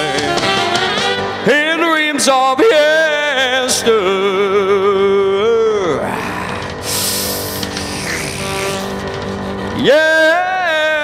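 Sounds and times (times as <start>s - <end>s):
man singing: 0.0s - 8.8s, 9.7s - 11.0s
backing music: 0.0s - 11.0s.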